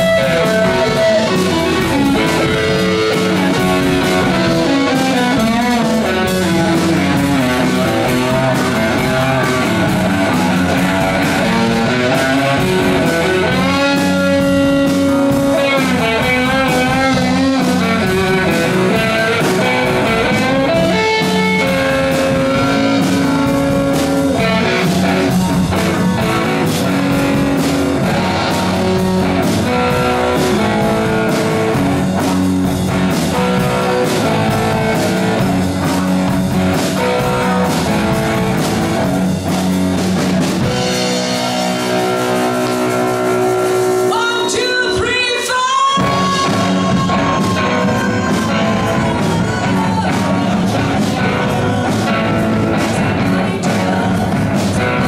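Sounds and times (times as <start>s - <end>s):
electric guitar bending notes: 0.0s - 45.1s, 45.9s - 55.0s
live rock band playing: 0.0s - 55.0s.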